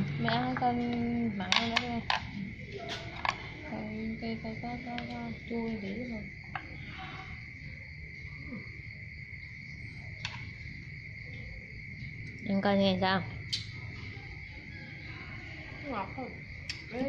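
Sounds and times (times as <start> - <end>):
crickets trilling: 0.0 - 17.0.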